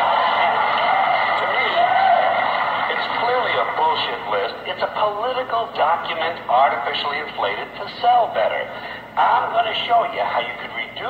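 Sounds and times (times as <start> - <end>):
comedian talking over loudspeaker: 2.9 - 11.0.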